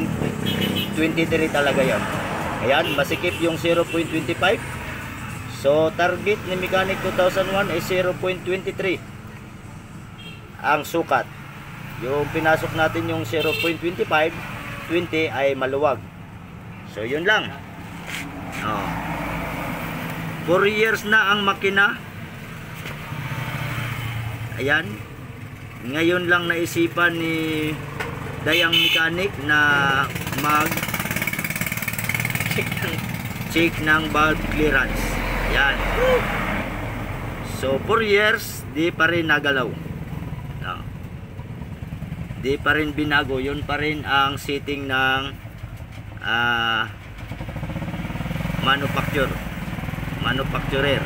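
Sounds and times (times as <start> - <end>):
vehicle engine humming: 0.0 - 51.0.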